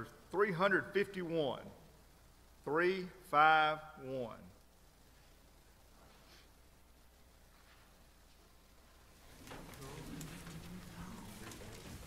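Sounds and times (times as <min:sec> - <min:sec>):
low steady hum: 0:00.0 - 0:12.0
hymnal pages rustling: 0:07.5 - 0:12.0.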